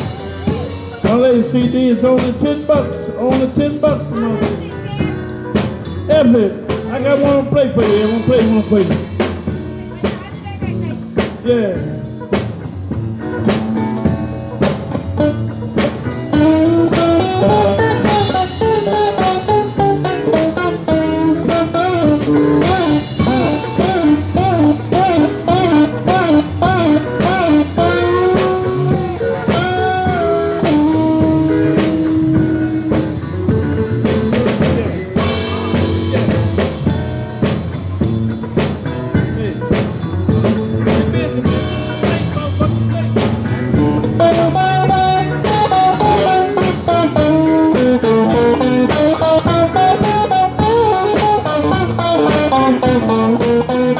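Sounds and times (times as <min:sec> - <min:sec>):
bass guitar: 0:00.0 - 0:53.9
drum kit: 0:00.0 - 0:53.9
electric guitar lead: 0:00.0 - 0:53.9.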